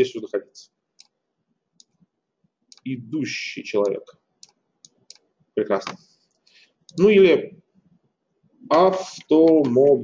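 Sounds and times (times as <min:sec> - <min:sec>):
man talking: 0:00.0 - 0:00.8, 0:02.8 - 0:04.2, 0:05.6 - 0:06.0, 0:06.9 - 0:07.6, 0:08.6 - 0:10.0
computer mouse clicks: 0:01.0 - 0:01.2, 0:01.8 - 0:02.0, 0:03.8 - 0:07.1.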